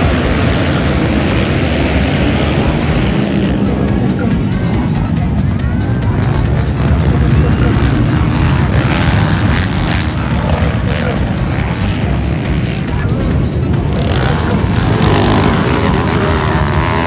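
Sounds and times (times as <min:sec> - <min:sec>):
dirt bike engines revving: 0:00.0 - 0:17.0
music with fast beat: 0:00.0 - 0:17.0.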